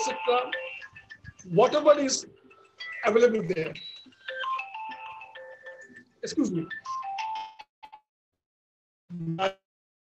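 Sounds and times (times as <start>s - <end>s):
phone ringtone melody: 0.0s - 8.0s.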